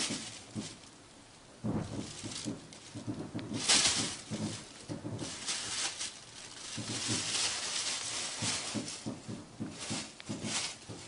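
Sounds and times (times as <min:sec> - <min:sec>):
soft thumps: 0:00.0 - 0:00.9, 0:01.6 - 0:11.0
plastic bag crinkling: 0:00.0 - 0:11.0.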